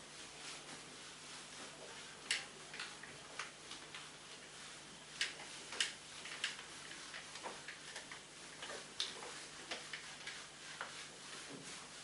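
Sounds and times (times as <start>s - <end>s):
duster rubbing on whiteboard: 0.0s - 2.3s, 3.3s - 12.0s.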